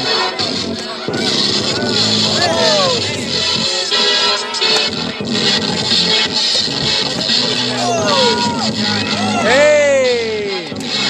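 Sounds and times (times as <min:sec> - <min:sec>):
hip hop music: 0:00.0 - 0:11.0
falling shouted cries: 0:02.3 - 0:03.2, 0:07.7 - 0:10.4.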